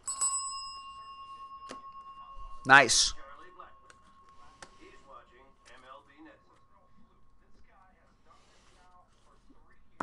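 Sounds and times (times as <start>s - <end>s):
small bell ringing: 0.0s - 7.4s.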